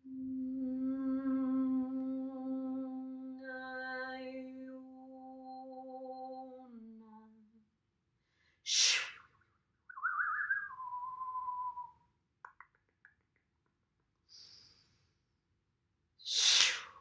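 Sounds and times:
woman humming: 0:00.0 - 0:07.5
sharp blown breath: 0:08.7 - 0:09.2, 0:16.2 - 0:17.0
woman whistling: 0:10.0 - 0:12.0.

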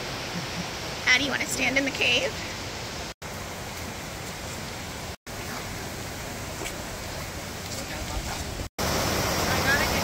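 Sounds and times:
creek rushing over rocks: 0:00.0 - 0:10.0.

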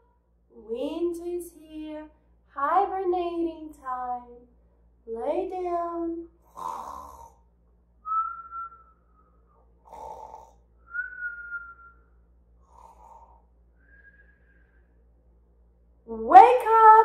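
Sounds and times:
woman pretend snoring: 0:06.4 - 0:07.4, 0:09.8 - 0:10.6, 0:12.6 - 0:13.4
falling whistle: 0:08.1 - 0:09.6, 0:10.8 - 0:12.1, 0:13.8 - 0:14.6.

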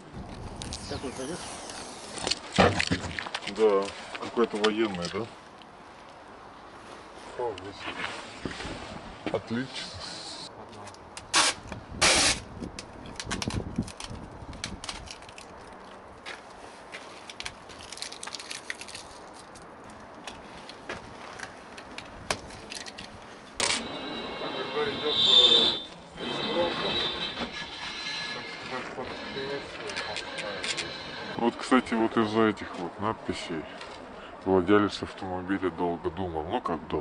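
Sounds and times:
adhesive tape ripping: 0:11.3 - 0:12.4
small clicks and handling noise: 0:12.7 - 0:16.4, 0:17.2 - 0:23.8
tape squealing: 0:23.6 - 0:31.5.

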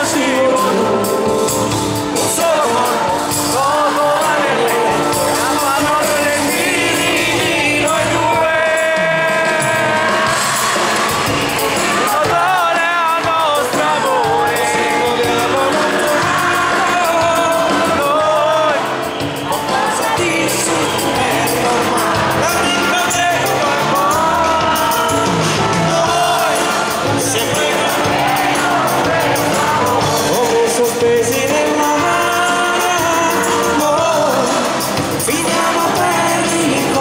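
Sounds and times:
drums: 0:00.0 - 0:37.0
keyboards: 0:00.0 - 0:37.0
live pop band playing: 0:00.0 - 0:37.0
person singing: 0:00.0 - 0:37.0.

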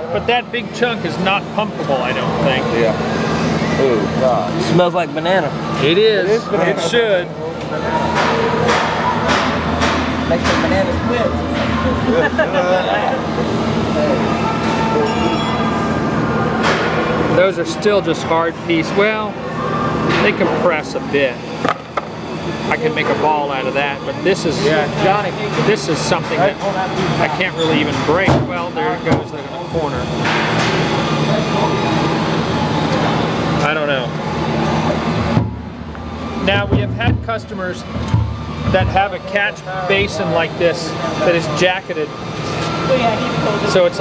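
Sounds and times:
machinery drone: 0:00.0 - 0:44.0.

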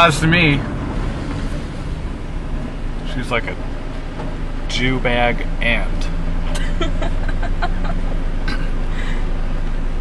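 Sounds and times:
car engine hum: 0:00.0 - 0:10.0
road noise: 0:00.0 - 0:10.0.

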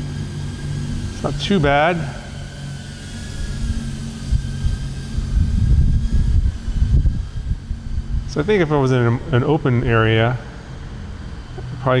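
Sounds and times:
faint steady hum: 0:00.0 - 0:12.0
low uneven rumble: 0:00.0 - 0:12.0.

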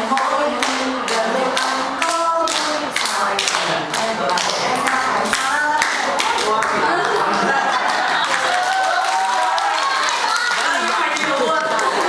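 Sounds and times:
voices singing: 0:00.0 - 0:08.8
hands clapping a steady beat: 0:00.0 - 0:12.0.

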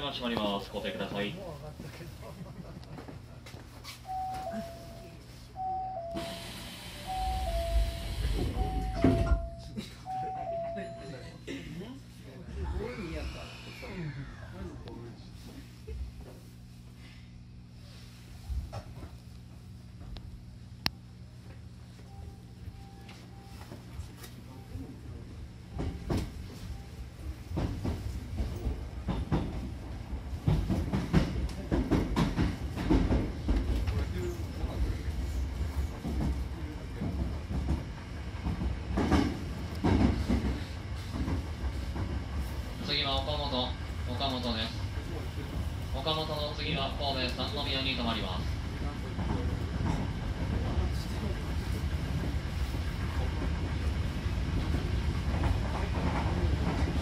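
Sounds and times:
train running rumble: 0:00.0 - 0:11.1, 0:12.0 - 0:57.0
train doors sliding shut: 0:06.0 - 0:09.7, 0:38.5 - 0:42.3
two-note falling door chime: 0:07.1 - 0:11.1.

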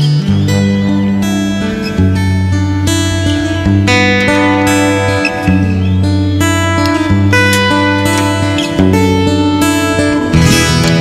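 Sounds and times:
twelve-string acoustic guitar chords: 0:00.0 - 0:11.0.

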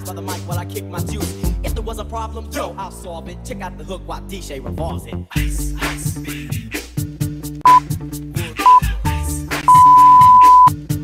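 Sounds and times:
hip-hop music: 0:00.0 - 0:04.6, 0:05.3 - 0:07.1, 0:07.7 - 0:10.7
interval timer beeping: 0:09.7 - 0:10.7.

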